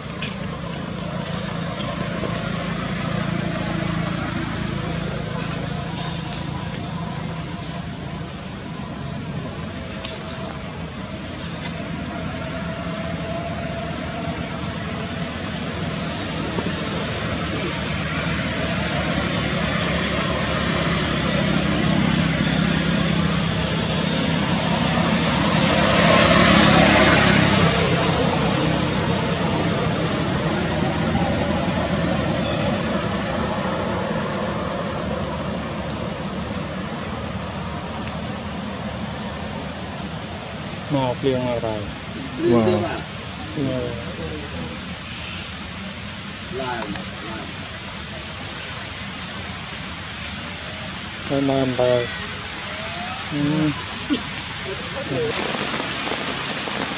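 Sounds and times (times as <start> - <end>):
vehicle passing by: 0.0 - 8.5, 11.2 - 44.8.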